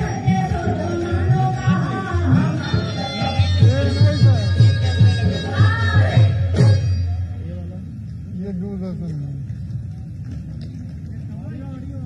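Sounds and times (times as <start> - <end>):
low outdoor rumble: 5.7 - 12.0.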